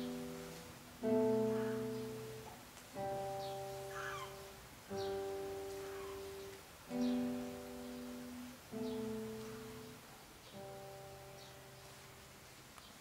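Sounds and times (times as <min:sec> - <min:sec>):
acoustic guitar chords ringing: 0:00.0 - 0:12.3.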